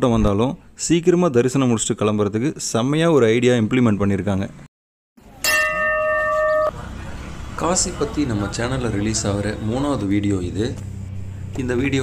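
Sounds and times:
bell ringing: 0:05.4 - 0:06.9.

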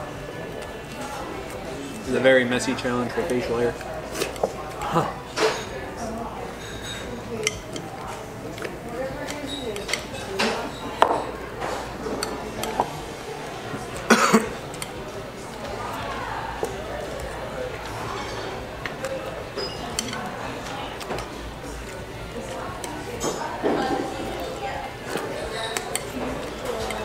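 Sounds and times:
background chatter: 0:00.0 - 0:27.0
metal spoons clinking on glass bowls: 0:06.5 - 0:11.4, 0:18.0 - 0:21.3, 0:22.5 - 0:27.0.

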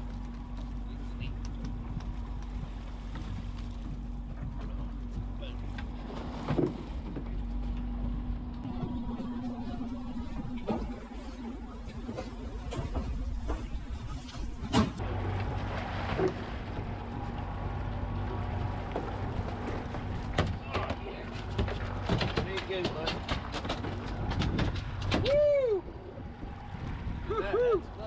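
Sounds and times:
outboard engine running: 0:00.0 - 0:28.0
fish thrashing on deck: 0:18.7 - 0:25.3.

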